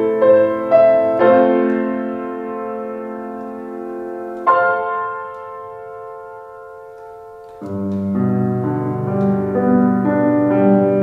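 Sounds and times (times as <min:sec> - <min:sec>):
solo grand piano chords: 0:00.0 - 0:11.0.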